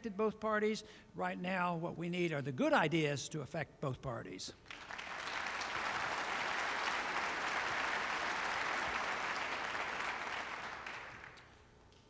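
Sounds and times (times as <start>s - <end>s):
audience applauding: 4.7s - 11.6s.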